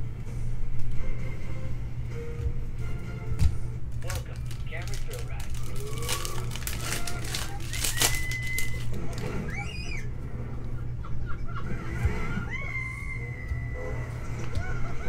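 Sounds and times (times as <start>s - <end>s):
low steady hum: 0.0s - 15.0s
cards rustling: 4.0s - 9.3s
wrapper tearing and crinkling: 4.0s - 9.3s
short whistle-like tones: 8.0s - 8.8s.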